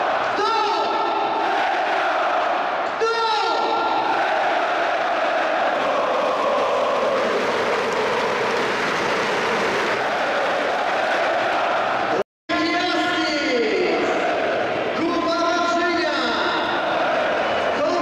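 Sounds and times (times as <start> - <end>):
crowd chanting and singing: 0.0 - 3.0, 3.6 - 12.2, 13.9 - 15.0, 16.5 - 18.0.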